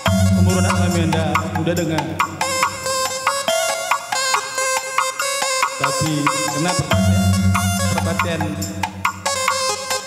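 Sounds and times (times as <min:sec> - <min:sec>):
bass beat: 0:00.0 - 0:04.4, 0:05.7 - 0:10.0
electronic keyboard melody: 0:00.0 - 0:10.0.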